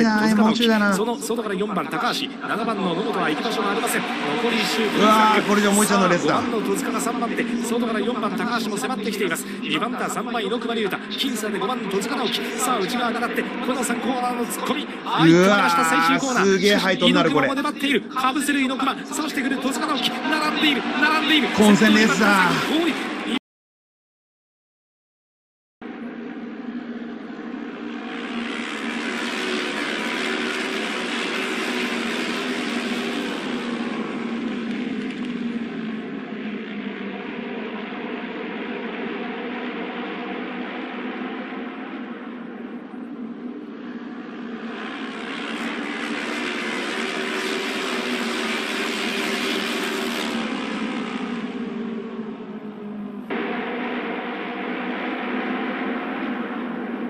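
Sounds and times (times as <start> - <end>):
motorcycle engines racing past: 27.8 - 40.3, 44.4 - 57.0.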